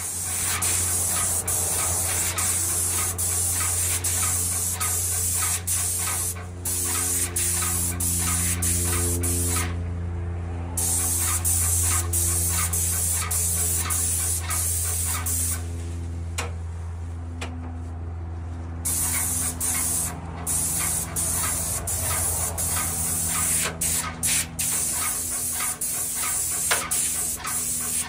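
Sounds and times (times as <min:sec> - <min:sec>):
paint sprayer hissing: 0:00.0 - 0:09.8, 0:10.8 - 0:15.7, 0:18.8 - 0:28.0.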